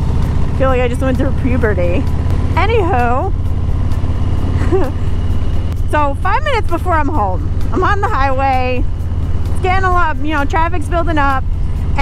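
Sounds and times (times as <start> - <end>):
motorcycle engine rumbling: 0.0 - 12.0.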